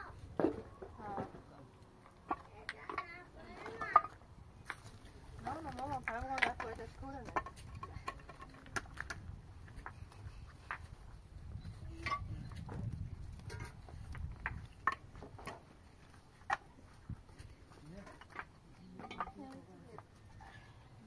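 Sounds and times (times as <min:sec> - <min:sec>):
concrete blocks knocking: 0:02.1 - 0:04.8, 0:05.4 - 0:10.0, 0:12.0 - 0:16.8, 0:17.4 - 0:20.6.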